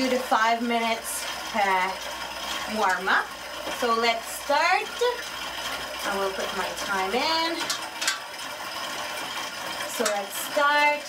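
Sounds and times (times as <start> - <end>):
exercise bike flywheel whirring: 0.0 - 11.0.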